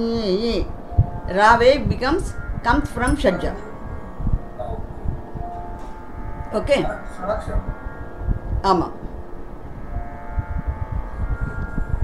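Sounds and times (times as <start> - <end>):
faint steady tones: 0.0 - 12.0
low microphone rumble: 0.0 - 12.0.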